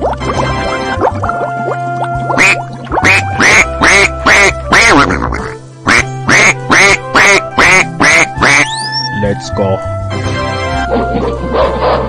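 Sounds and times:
background music: 0:00.0 - 0:12.0
duck quacking: 0:02.3 - 0:09.1.

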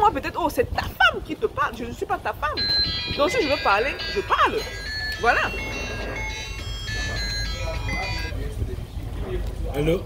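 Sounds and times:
high-pitched electronic jingle: 0:02.6 - 0:08.6.

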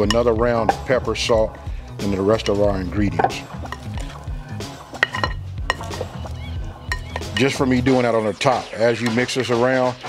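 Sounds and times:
background music: 0:00.0 - 0:10.0
wooden spatula tossing food in bowl: 0:02.3 - 0:07.6
wood clicking against glass: 0:03.2 - 0:04.3.

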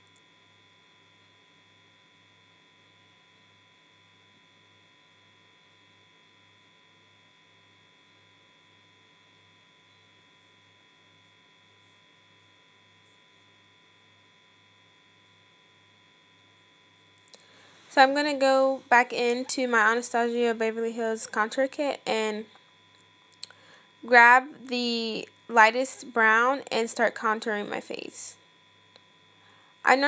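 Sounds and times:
faint electrical hum: 0:00.0 - 0:30.0.

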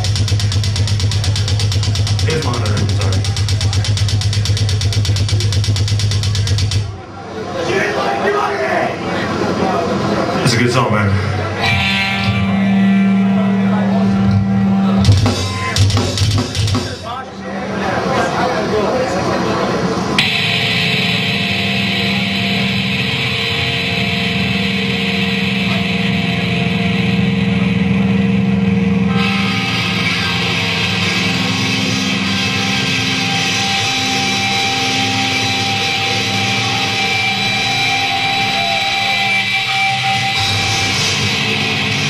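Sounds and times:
death metal band playing live: 0:00.0 - 0:07.0, 0:11.2 - 0:18.4, 0:20.1 - 0:42.0.

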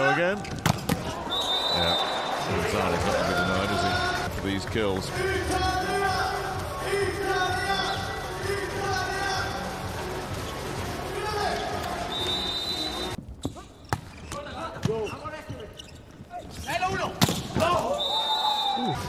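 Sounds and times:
volleyball hits: 0:00.4 - 0:01.2
arena music: 0:02.1 - 0:13.2
shoes squeaking on court floor: 0:11.5 - 0:18.0.

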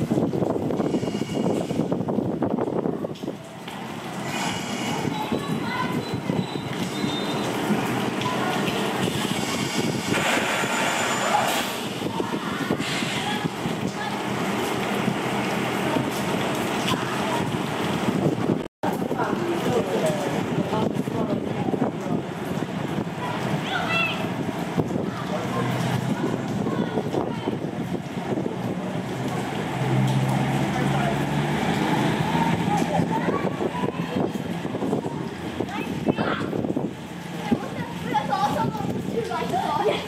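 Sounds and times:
steady rain: 0:00.0 - 0:40.0
wind noise: 0:00.0 - 0:40.0
faint voices: 0:18.8 - 0:40.0.

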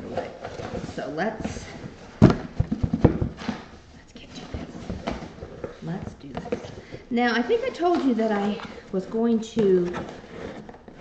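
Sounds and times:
cardboard box being handled: 0:04.3 - 0:11.0.

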